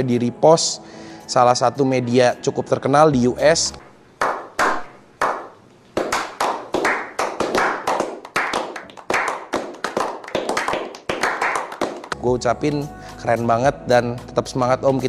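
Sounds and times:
group clapping together: 0:04.2 - 0:12.2
slow hand claps: 0:04.2 - 0:12.2.

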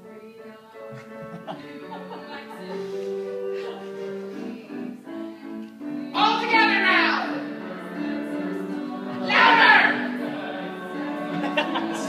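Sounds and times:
voices singing together: 0:00.0 - 0:12.0.

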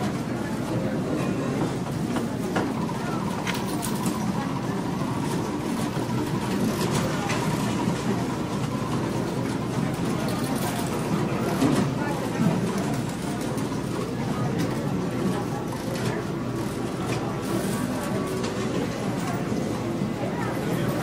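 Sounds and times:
murmur of many voices: 0:00.0 - 0:21.0.

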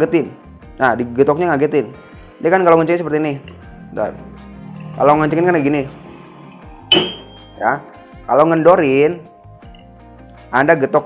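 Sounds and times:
hammer striking steel wrench: 0:06.9 - 0:07.5.

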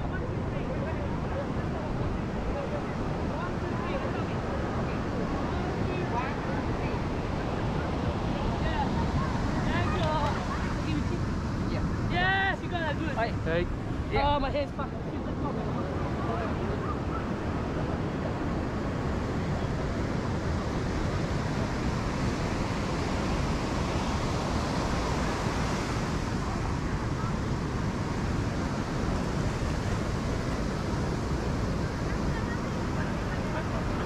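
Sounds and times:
faint voices: 0:00.0 - 0:34.0
surf washing onto beach: 0:00.0 - 0:34.0.

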